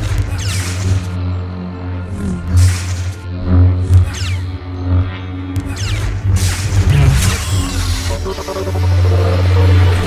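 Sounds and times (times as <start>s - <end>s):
lightsaber hum: 0.0s - 10.0s
trailer music: 0.0s - 10.0s
lightsaber swishing: 6.4s - 8.5s.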